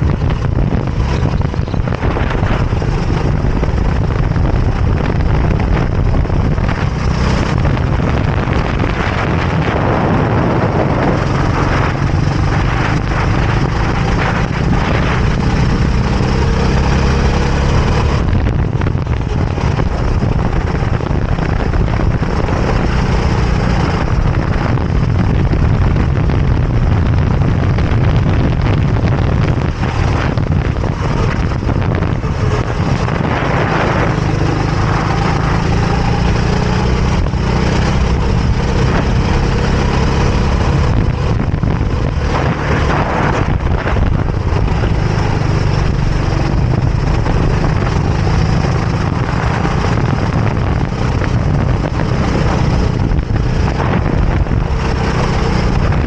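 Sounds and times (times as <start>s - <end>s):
kart engine at racing speed: 0.0s - 56.0s.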